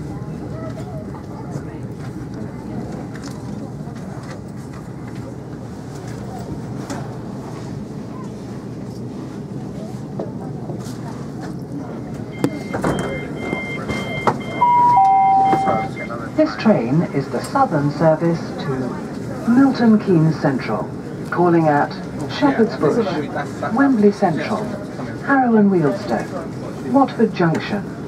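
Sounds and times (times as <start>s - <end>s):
train rumbling inside carriage: 0.0s - 28.0s
high electronic beeps: 12.4s - 16.2s
announcement chime: 12.4s - 16.3s.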